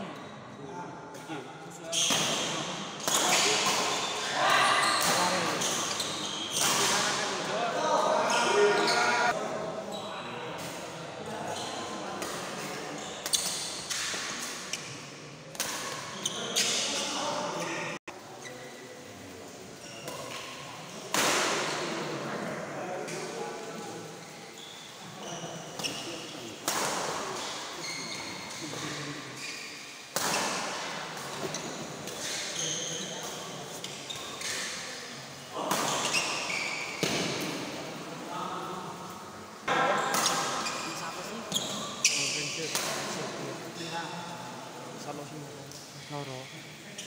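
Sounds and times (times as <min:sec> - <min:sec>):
spectators' voices: 0:02.0 - 0:10.0.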